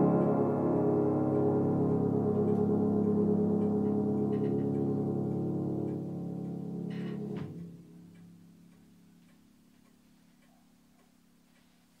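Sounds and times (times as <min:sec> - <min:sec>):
piano chord ringing: 0:00.0 - 0:09.2.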